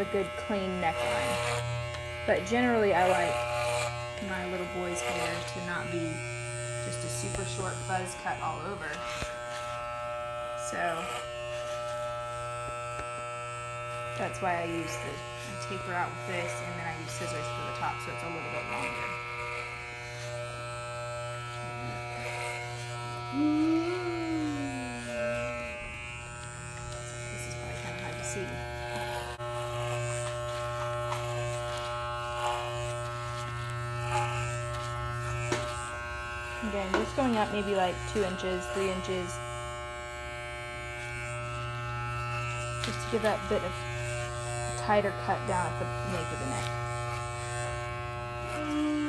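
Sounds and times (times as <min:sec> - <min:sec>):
electric hair clippers humming: 0:00.0 - 0:49.0.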